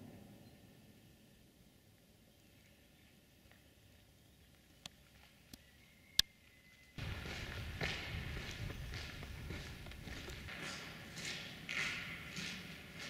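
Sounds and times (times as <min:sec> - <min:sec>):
footsteps on gritty concrete: 0:07.0 - 0:13.0.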